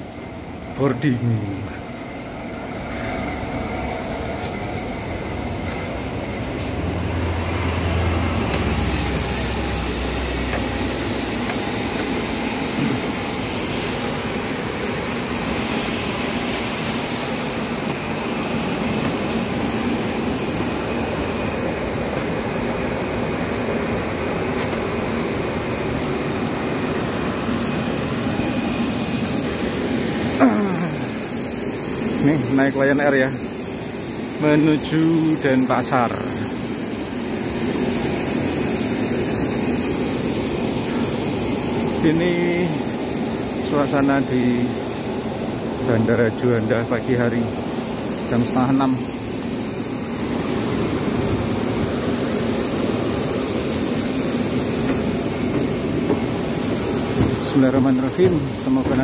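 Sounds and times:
thin high whine: 0.0 - 23.0, 25.6 - 59.0
jet aircraft roar: 0.0 - 59.0.

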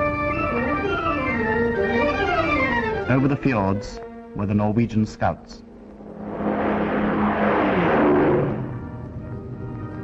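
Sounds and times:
orchestral film music: 0.0 - 6.0, 8.4 - 10.0
propeller aircraft passing overhead: 5.7 - 10.0.

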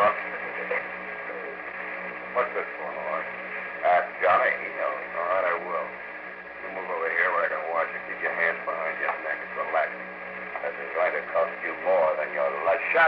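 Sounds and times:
low hum and hiss: 0.0 - 13.0
voices talking in radio drama: 0.0 - 13.0.

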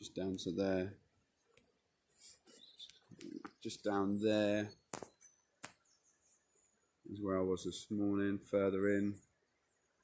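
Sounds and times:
faint sharp click: 4.9 - 5.8.

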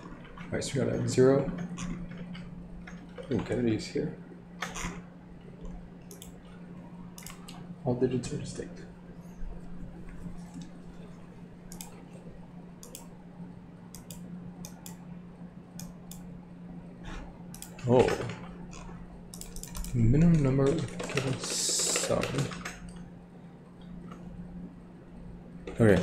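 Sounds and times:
steady low hum: 0.0 - 26.0
computer keyboard typing: 17.6 - 23.0
person's voice: 19.9 - 22.6.

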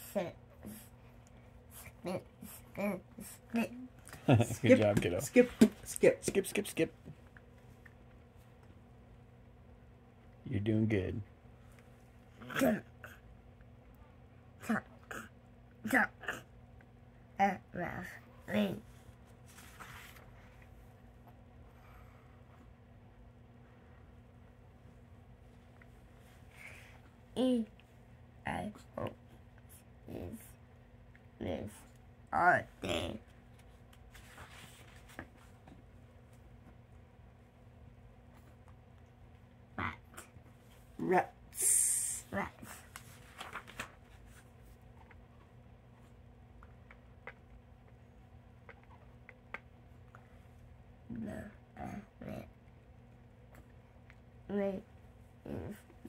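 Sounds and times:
low room hum: 0.0 - 56.0
paper page rustle: 19.4 - 20.4, 34.0 - 35.5, 42.9 - 44.5
book page turning: 42.9 - 44.5.

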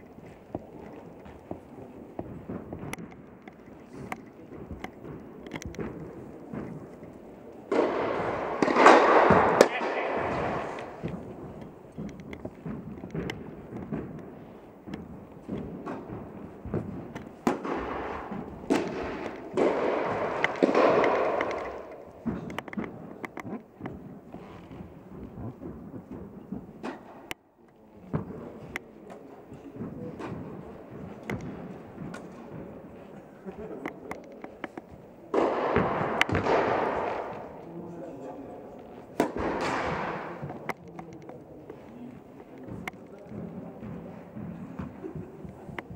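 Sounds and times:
voices in background: 0.1 - 26.8, 27.4 - 45.9
tennis balls struck and bouncing: 0.1 - 27.4, 28.1 - 32.7, 33.8 - 37.8, 38.8 - 45.9.

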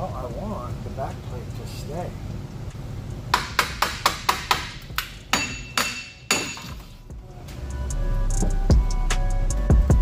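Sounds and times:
hammer striking metal: 3.3 - 7.0.

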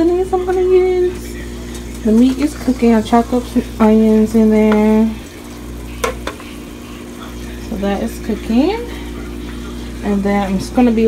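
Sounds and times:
meat and onions sizzling: 0.4 - 11.0
spatula knocking against pot: 6.0 - 6.4.

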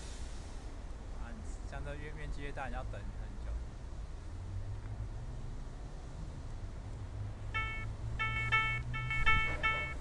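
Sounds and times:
electronic beeping notes: 7.5 - 10.0.

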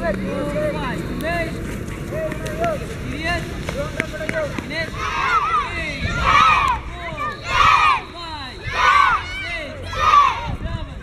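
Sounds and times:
children calling out together: 4.9 - 10.6.

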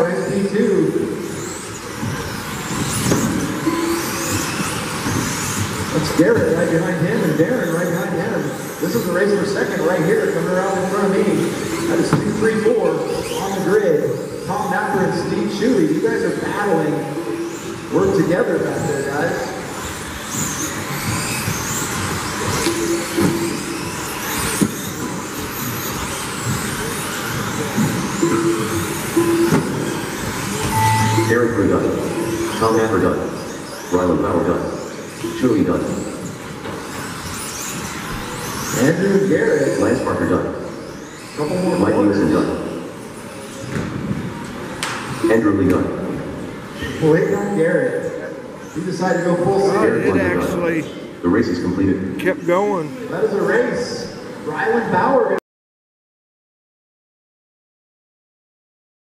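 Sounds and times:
rc car motor whine: 0.3 - 14.5, 19.3 - 29.2, 36.0 - 39.1, 39.7 - 43.6.

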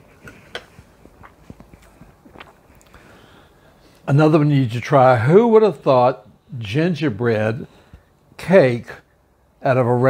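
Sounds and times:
man chewing soft cake: 0.0 - 3.4
faint mouth clicks: 1.2 - 3.0.

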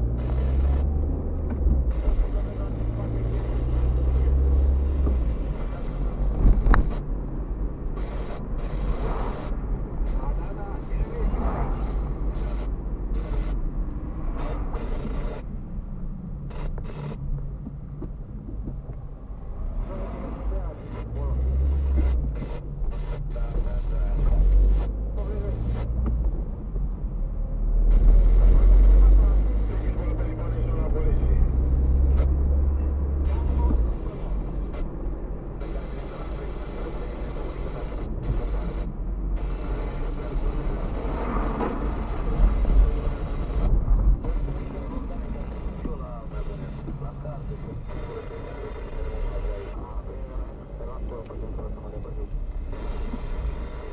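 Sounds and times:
car engine and road rumble: 0.0 - 53.9.

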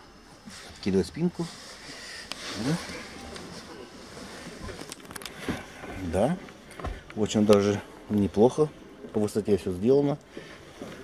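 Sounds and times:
clothing and upholstery rustling: 0.3 - 11.0.

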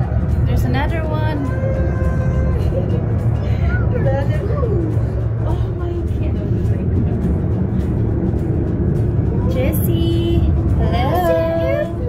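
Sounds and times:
funicular car rumbling on rails: 0.0 - 12.0.

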